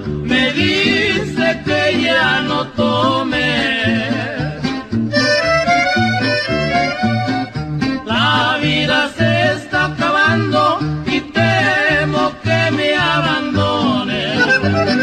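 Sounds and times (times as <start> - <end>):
accordion melody: 0.0 - 15.0
bass and guitar rhythm: 0.0 - 15.0.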